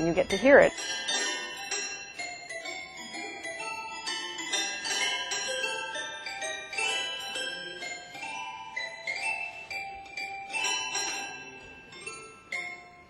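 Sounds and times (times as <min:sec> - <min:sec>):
toy pianos playing: 0:00.0 - 0:13.0.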